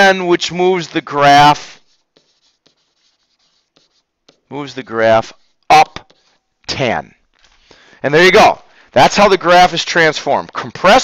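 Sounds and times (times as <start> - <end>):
pen scratching on whiteboard: 0.8 - 6.4.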